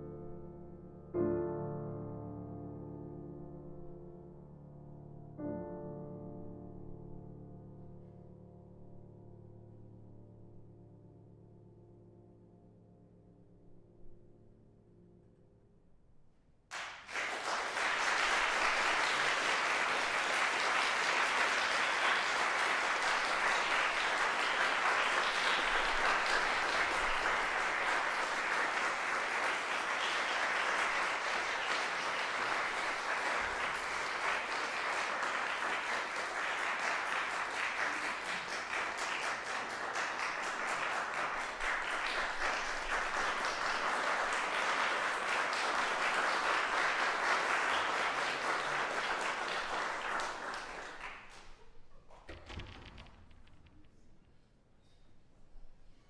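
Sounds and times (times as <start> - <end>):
audience applauding: 16.7 - 53.1.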